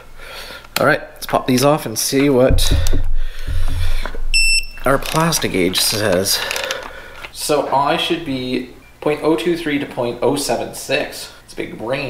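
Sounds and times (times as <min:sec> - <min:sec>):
low rumble: 0:02.5 - 0:05.2
short high-pitched electronic beep: 0:04.3 - 0:04.8.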